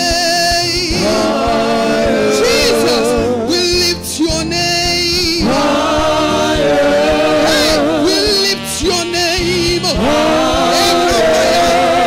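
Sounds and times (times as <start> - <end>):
gospel singing with backing singers: 0.0 - 12.0.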